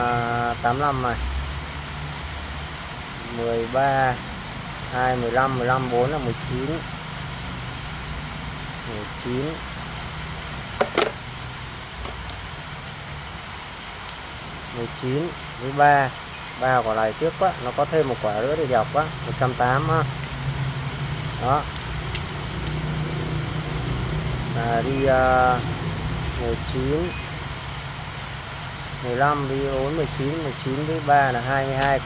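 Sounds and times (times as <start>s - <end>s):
low mechanical hum: 0.0s - 32.0s
capacitors clicking together: 31.6s - 32.0s.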